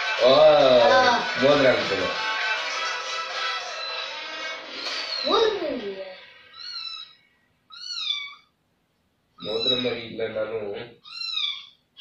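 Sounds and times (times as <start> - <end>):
cat meowing: 6.4 - 8.6, 9.4 - 10.0, 11.0 - 11.8.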